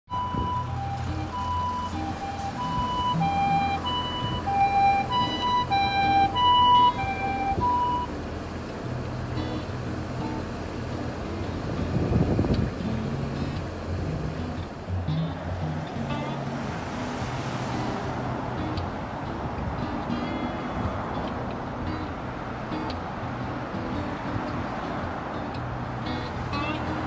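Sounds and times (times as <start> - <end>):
ambulance siren two-tone: 0.1 - 8.1
heavy road traffic: 0.1 - 27.0
vehicle passing: 0.1 - 27.0.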